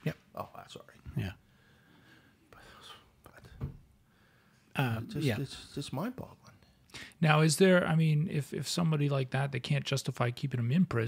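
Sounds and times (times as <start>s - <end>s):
soft breath-like sound: 1.5s - 4.8s
man saying yeah: 4.8s - 5.9s.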